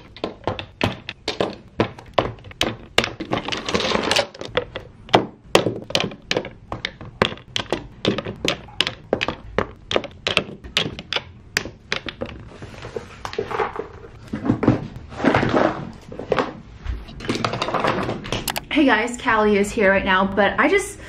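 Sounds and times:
small bottles clacking: 0.0s - 14.6s.

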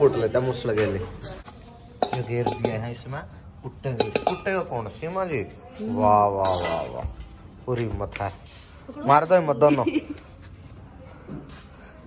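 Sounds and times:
steel utensils clinking: 0.0s - 5.1s, 6.2s - 7.8s.

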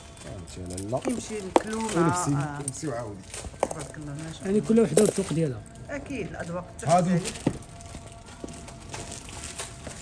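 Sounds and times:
metal bangles clinking: 0.0s - 6.0s
people talking: 0.3s - 7.4s.

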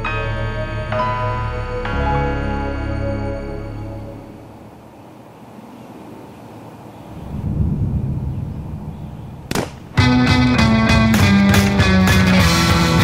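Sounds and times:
low rumble: 7.1s - 10.6s
sharp bang: 7.2s - 10.6s.

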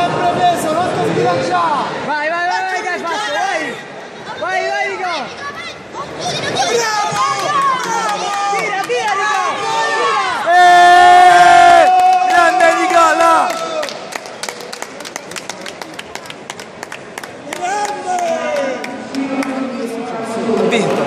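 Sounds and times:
spectator shouting and yelling: 2.2s - 13.9s
crowd clapping: 7.0s - 9.6s, 11.7s - 19.7s, 20.4s - 21.0s.

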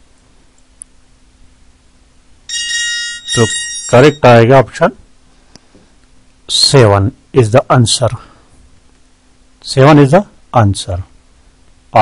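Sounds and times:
bell-like chime ringing: 2.5s - 4.4s.

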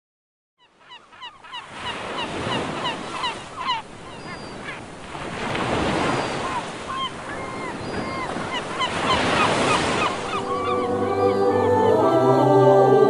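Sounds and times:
birds crying: 0.6s - 4.8s, 6.0s - 11.6s
sea surf washing: 1.4s - 13.0s.

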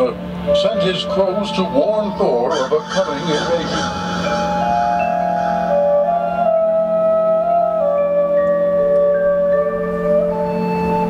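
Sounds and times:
marching band flutes playing: 0.0s - 11.0s
steady low drone: 0.0s - 11.0s.

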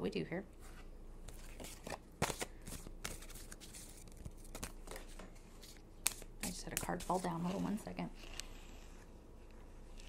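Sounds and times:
cards being shuffled: 1.3s - 8.6s.

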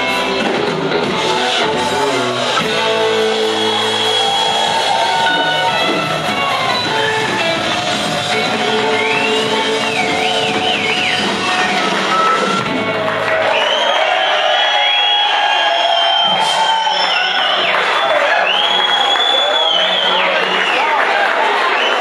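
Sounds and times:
live rock band: 0.0s - 14.1s
crowd cheering and whooping: 0.9s - 22.0s.

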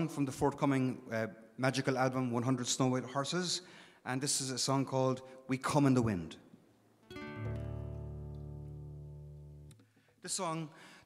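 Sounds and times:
acoustic guitar chord ringing: 7.0s - 9.8s.

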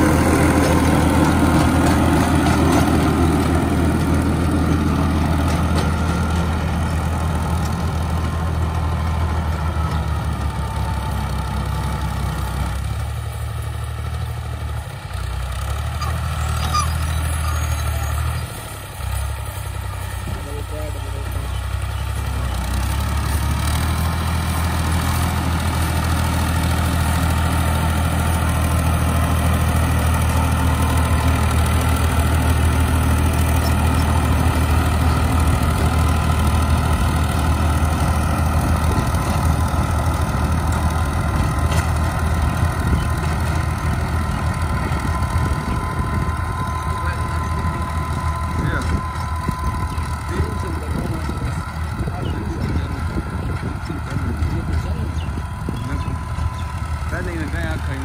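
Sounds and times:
tractor engine under load: 0.0s - 58.0s.

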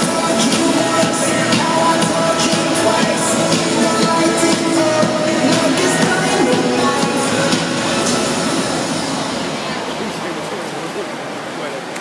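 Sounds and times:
background music: 0.0s - 10.6s
echoing indoor pool din: 0.0s - 12.0s.

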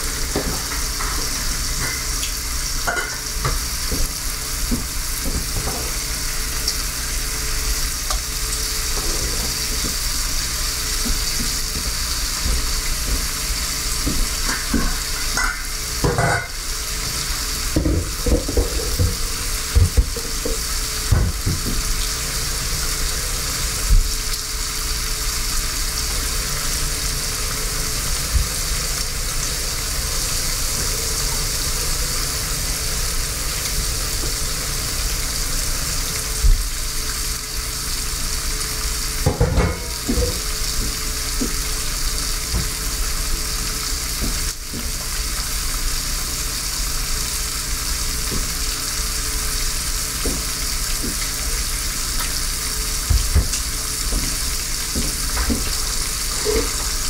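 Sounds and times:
bacon sizzling in skillet: 0.0s - 57.0s.

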